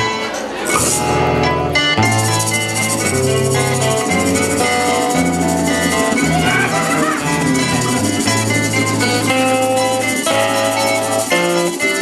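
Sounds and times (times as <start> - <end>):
acoustic guitars: 0.0 - 12.0
bass line: 0.7 - 12.0
hand drums: 0.7 - 12.0
steady high rhythm: 0.7 - 12.0.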